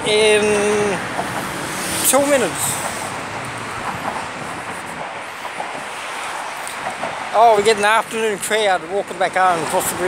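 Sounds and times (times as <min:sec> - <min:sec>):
road traffic rushing: 0:00.0 - 0:10.0.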